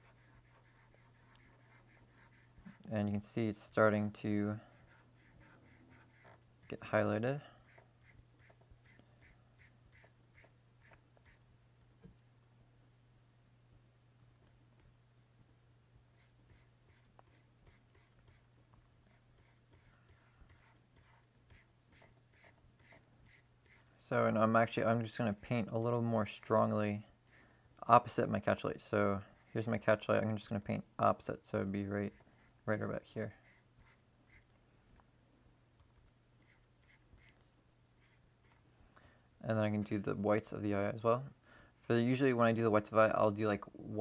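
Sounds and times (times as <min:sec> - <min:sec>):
stylus scratching on graphics tablet: 0:00.0 - 0:02.9, 0:04.6 - 0:06.8, 0:07.6 - 0:11.4, 0:16.2 - 0:18.5, 0:19.1 - 0:23.8, 0:29.3 - 0:29.8, 0:33.2 - 0:34.5, 0:36.4 - 0:37.4, 0:38.0 - 0:38.6
low steady hum: 0:00.0 - 0:44.0.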